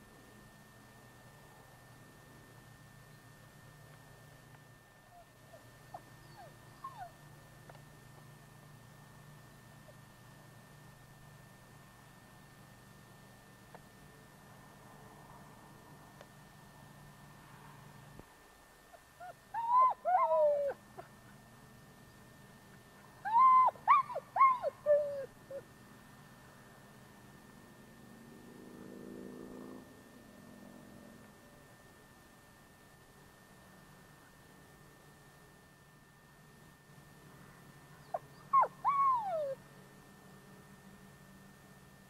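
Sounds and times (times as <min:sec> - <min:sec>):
steady low hum: 0:00.0 - 0:42.0
dog whimpering: 0:05.1 - 0:07.2, 0:19.2 - 0:21.1, 0:23.2 - 0:25.6, 0:38.0 - 0:39.6.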